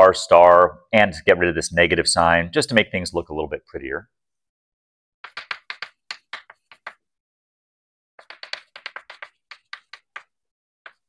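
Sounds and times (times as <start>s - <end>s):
chalk tapping and scratching: 5.2s - 7.0s, 8.2s - 11.0s.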